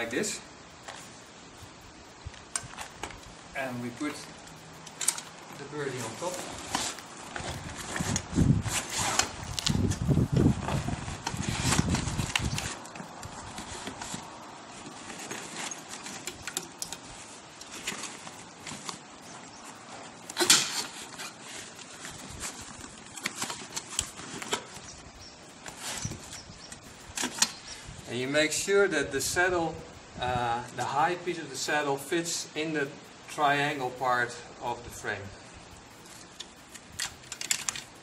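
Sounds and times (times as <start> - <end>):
bicycle frame clicking and rattling: 2.3 - 3.4, 4.1 - 28.0, 35.8 - 38.0.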